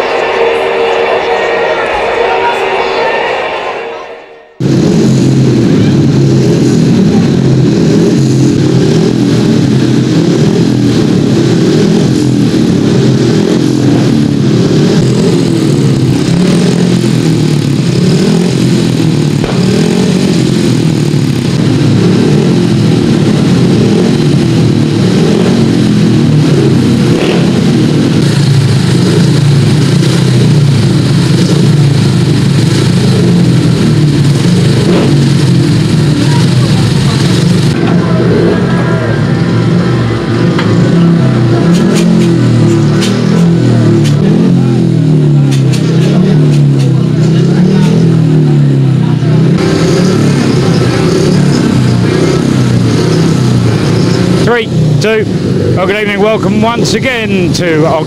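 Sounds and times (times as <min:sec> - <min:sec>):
motorcycle engines running: 0:04.6 - 0:58.0.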